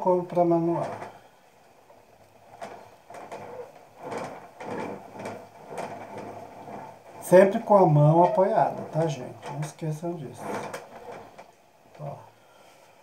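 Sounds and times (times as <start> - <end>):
scraping clay pot wall: 0.0 - 1.3, 2.2 - 12.2.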